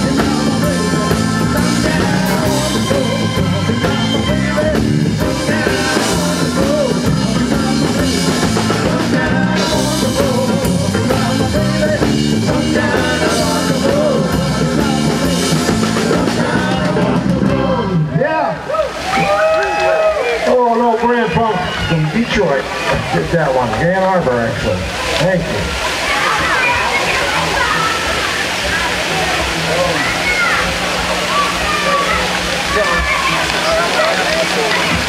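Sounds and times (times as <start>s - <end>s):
drum kit: 0.0s - 18.0s
acoustic guitar: 0.0s - 18.2s
bass guitar: 0.0s - 18.4s, 21.1s - 35.0s.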